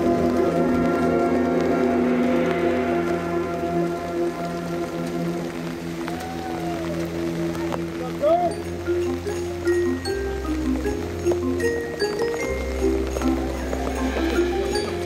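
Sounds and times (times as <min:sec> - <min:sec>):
marching band sustained chord: 0:00.0 - 0:06.0, 0:11.7 - 0:15.0
mallet percussion: 0:08.4 - 0:15.0.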